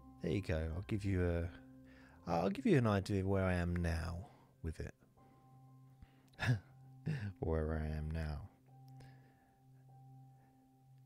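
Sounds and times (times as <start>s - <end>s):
soft held-tone background music: 0.0s - 11.0s.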